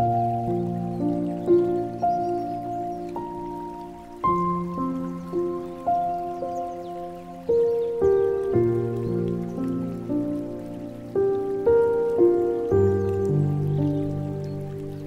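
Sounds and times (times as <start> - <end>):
slow gentle solo piano: 0.0 - 15.0
water trickling and pattering: 0.0 - 15.0.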